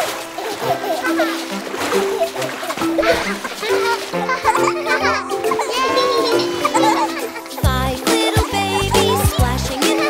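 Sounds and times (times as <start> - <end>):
upbeat children's music: 0.0 - 10.0
water splashing: 0.0 - 10.0
child vocal sounds: 7.6 - 10.0.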